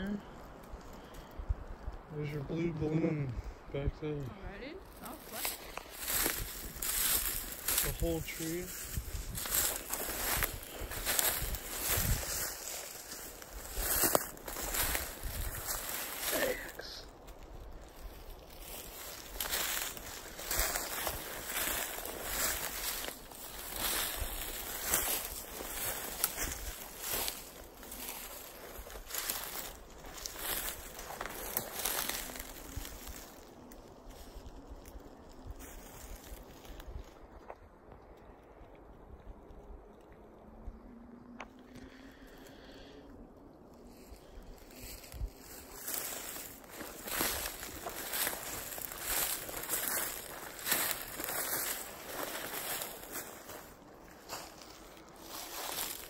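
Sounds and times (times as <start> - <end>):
brush rustling: 4.3 - 37.4, 43.4 - 56.0
footsteps through dry leaves: 4.4 - 37.6, 41.6 - 56.0.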